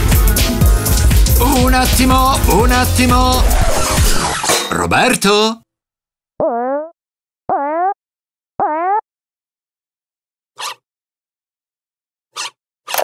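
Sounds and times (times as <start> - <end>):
electronic dance music: 0.0 - 5.6.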